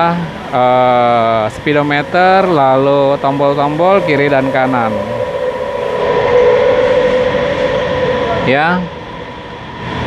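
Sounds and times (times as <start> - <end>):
loud machine drone: 0.0 - 10.0.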